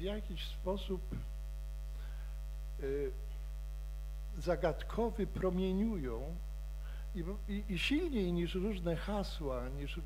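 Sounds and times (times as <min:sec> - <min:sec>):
man speaking: 0:00.0 - 0:01.3, 0:02.8 - 0:03.2, 0:04.4 - 0:06.4, 0:07.2 - 0:10.0
electrical mains hum: 0:00.0 - 0:10.0.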